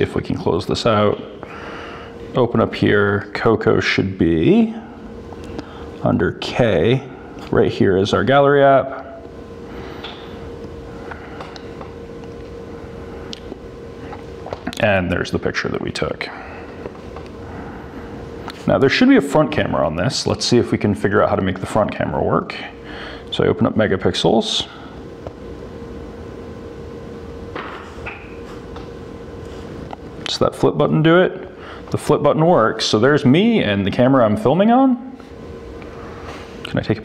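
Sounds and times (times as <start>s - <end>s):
constant hum: 0.0s - 37.0s.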